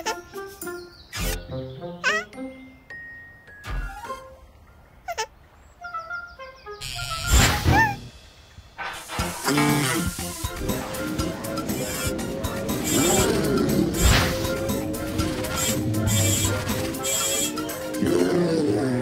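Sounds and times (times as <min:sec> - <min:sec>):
playful children's background music: 0:00.0 - 0:05.2, 0:05.8 - 0:19.0.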